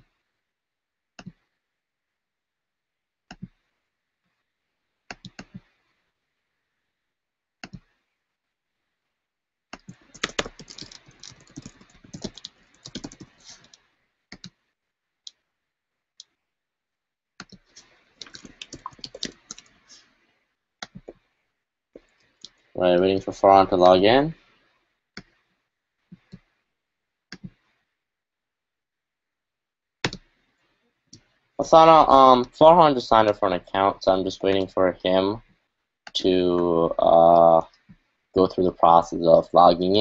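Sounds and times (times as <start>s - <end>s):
mouse clicks: 1.2s - 1.4s
typing on computer keyboard: 9.8s - 13.7s, 18.2s - 19.8s.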